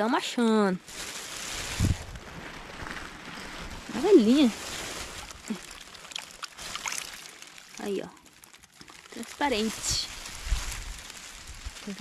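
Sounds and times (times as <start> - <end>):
drizzle on gravel: 0.8 - 12.0
wind buffeting microphone: 1.6 - 2.4.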